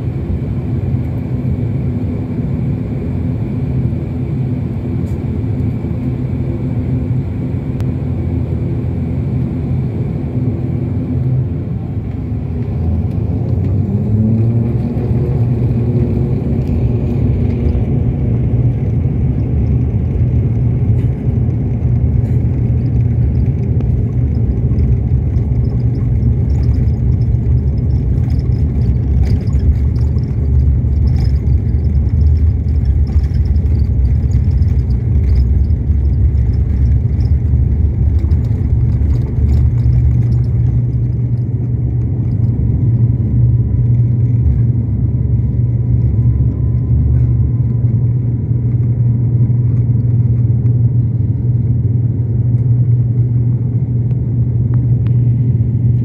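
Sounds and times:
turboprop engines droning: 0:00.0 - 0:56.0.

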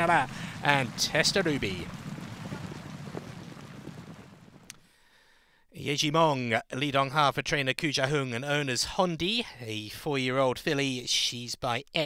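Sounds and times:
wind on microphone: 0:00.0 - 0:04.7.

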